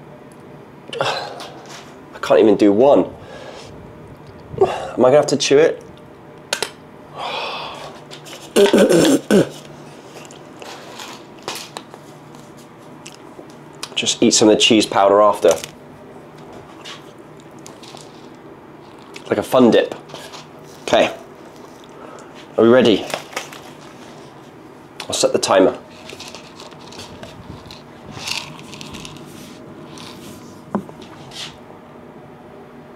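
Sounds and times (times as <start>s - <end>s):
man clearing throat: 0.9s - 1.6s, 4.6s - 5.0s, 8.5s - 9.6s
man sighing: 4.6s - 5.0s, 7.2s - 8.0s
crunching dry macaroni: 16.8s - 19.4s, 25.8s - 30.4s.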